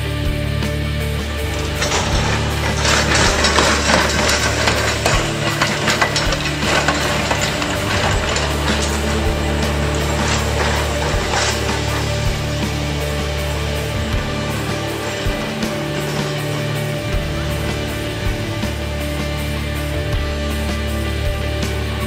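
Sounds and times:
background music: 0.0 - 22.0
tram wheels clattering over rails: 1.0 - 22.0.

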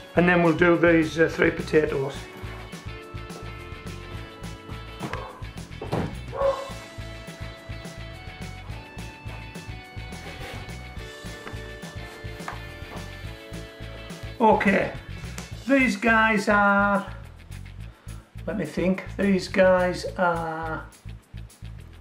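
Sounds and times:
background music with held notes: 0.0 - 22.0
dog barking: 5.0 - 5.5, 6.3 - 6.8.

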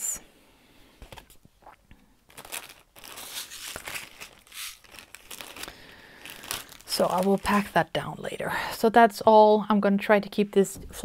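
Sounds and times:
packaging crinkling: 2.2 - 7.9.

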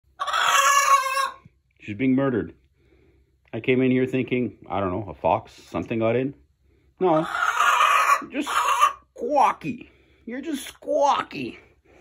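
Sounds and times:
hen squawking: 0.2 - 1.4, 7.1 - 9.6.

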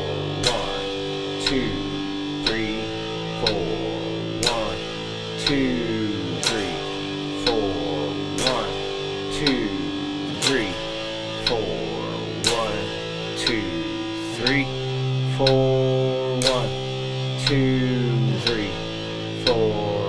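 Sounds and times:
electric guitar power chords: 0.0 - 20.0
metronome clicking: 0.0 - 20.0.

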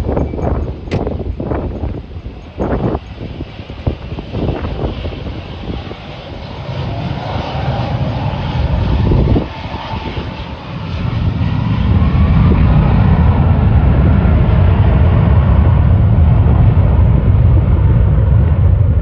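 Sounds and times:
jet engines with faint whine: 0.0 - 19.0.

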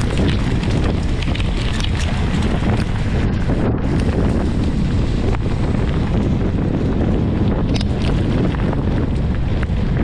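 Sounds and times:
tyres on gravel: 0.0 - 10.0
wind buffeting microphone: 0.0 - 10.0.

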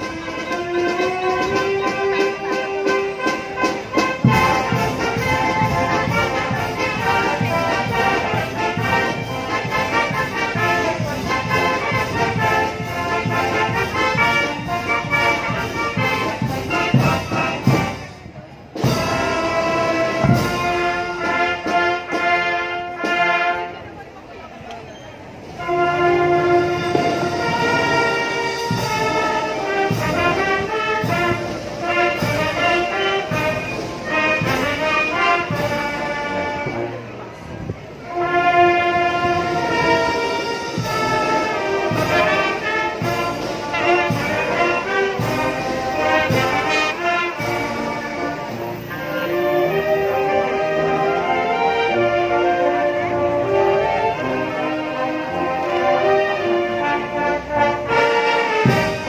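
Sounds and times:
marching band brass chords: 0.0 - 24.3, 25.2 - 59.0.

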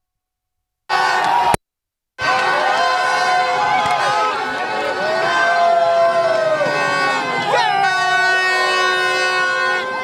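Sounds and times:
horns blowing long notes: 0.9 - 1.6, 2.2 - 10.0.

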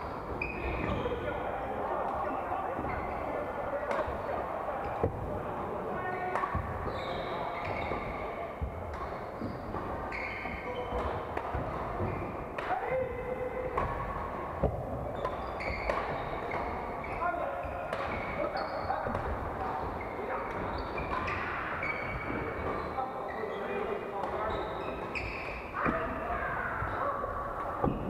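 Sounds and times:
players' voices: 0.4 - 28.0
rackets hitting shuttlecocks: 3.8 - 4.3, 6.2 - 6.9, 7.6 - 22.8
shoes squeaking on wooden floor: 6.0 - 12.4, 15.2 - 23.8, 24.4 - 26.1.

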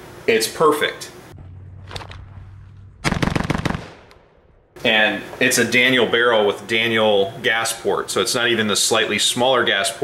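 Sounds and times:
rapid rifle shots: 3.0 - 4.4.

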